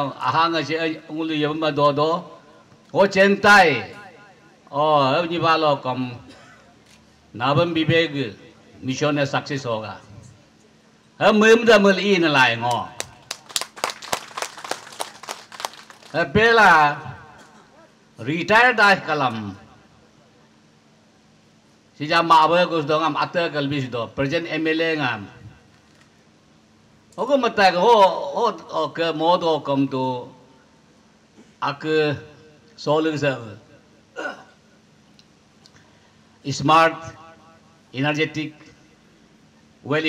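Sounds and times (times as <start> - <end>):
audience hand clapping: 12.7 - 16.2.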